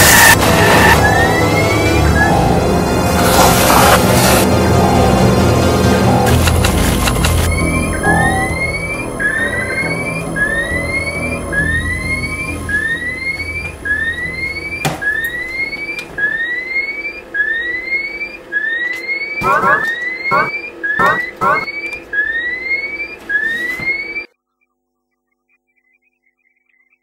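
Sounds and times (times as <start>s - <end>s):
electronic rising chirps: 0.0s - 5.2s, 6.0s - 24.3s
background music: 0.0s - 16.6s
warbling electronic tones: 6.1s - 24.3s.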